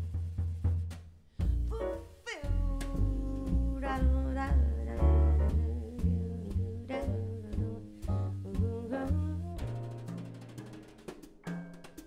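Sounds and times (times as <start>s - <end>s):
piano bass and drums trio: 0.0s - 12.0s
woman singing jazz: 1.4s - 10.2s.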